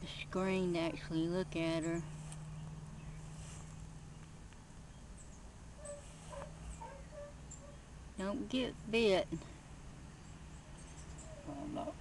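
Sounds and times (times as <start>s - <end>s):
distant birds chirping: 0.0s - 12.0s
steady low hum: 0.0s - 12.0s.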